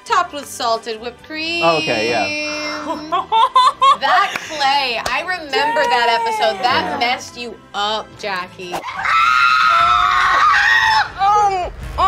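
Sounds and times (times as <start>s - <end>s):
woman screaming: 5.5s - 7.1s, 8.8s - 11.7s.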